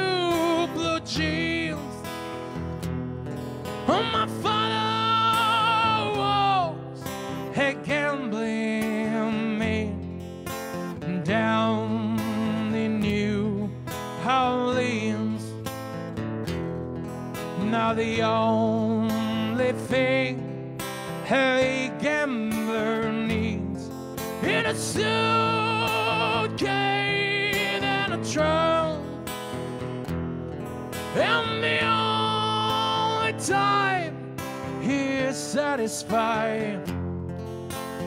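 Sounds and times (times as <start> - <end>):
man singing: 0.0 - 2.2, 3.8 - 10.2, 10.9 - 15.7, 17.5 - 29.4, 31.0 - 37.0
acoustic guitar strumming: 0.0 - 38.0.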